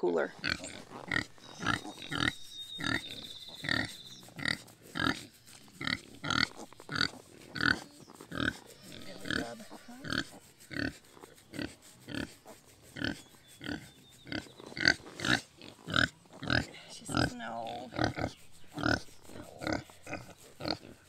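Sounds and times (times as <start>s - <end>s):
pig grunting: 0.0s - 21.0s
pig being stroked: 0.2s - 21.0s.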